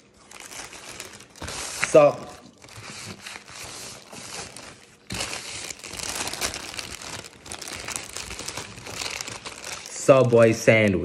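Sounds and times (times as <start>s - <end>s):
paper wrapper crinkling: 0.0s - 10.6s.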